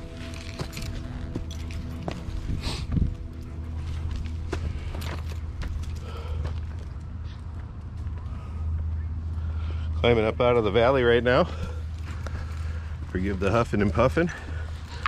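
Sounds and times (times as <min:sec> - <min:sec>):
background music with chords: 0:00.0 - 0:06.2
footsteps crunching on dirt: 0:00.0 - 0:15.0
steady low rumble: 0:00.0 - 0:15.0.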